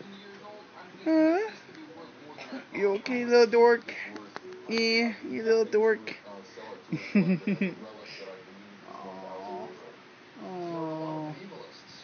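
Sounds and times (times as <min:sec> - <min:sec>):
man laughing: 0:06.9 - 0:07.8.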